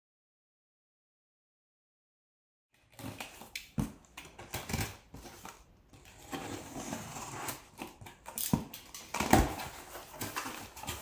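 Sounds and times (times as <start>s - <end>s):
cardboard rustling and creaking: 2.8s - 11.0s
plastic wrapping rustling: 7.6s - 11.0s.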